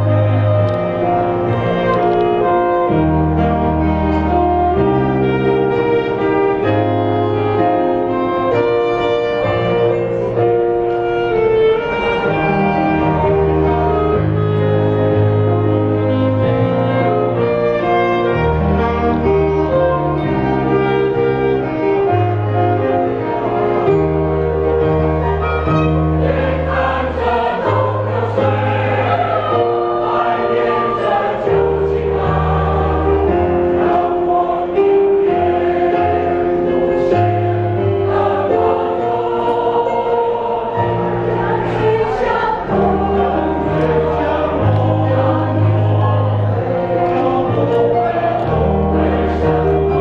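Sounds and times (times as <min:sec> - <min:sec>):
instrumental accompaniment bass notes: 0:00.0 - 0:50.0
mixed choir singing in harmony: 0:00.0 - 0:50.0.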